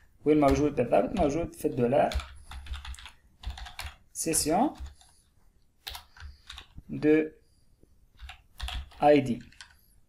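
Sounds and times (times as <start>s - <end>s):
keyboard keys clicking: 0.4s - 5.1s, 5.8s - 6.9s, 8.2s - 9.8s.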